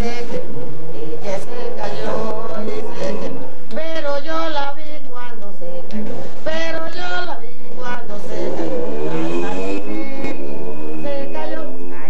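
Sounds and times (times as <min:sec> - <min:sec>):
person singing a long wavering note: 0:07.8 - 0:12.0.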